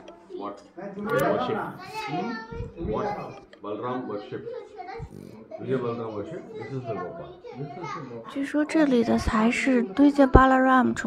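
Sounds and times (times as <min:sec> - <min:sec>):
chatter of voices: 0:00.0 - 0:11.0
children's voices: 0:01.5 - 0:11.0.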